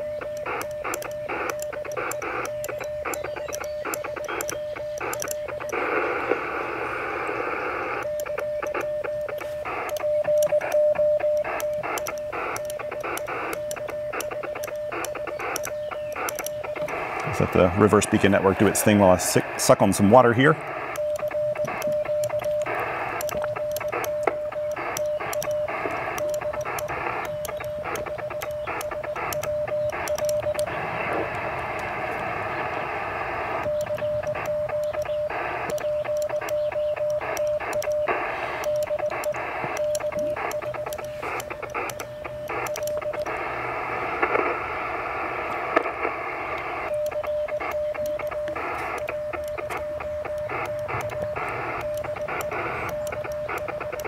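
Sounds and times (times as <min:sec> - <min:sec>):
morse code sidetone: 0:00.0 - 0:54.0
shortwave band hiss: 0:00.0 - 0:54.0.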